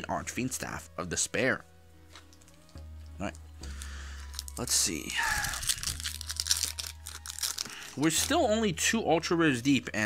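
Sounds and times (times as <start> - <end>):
foil wrapper crinkling: 3.7 - 8.5.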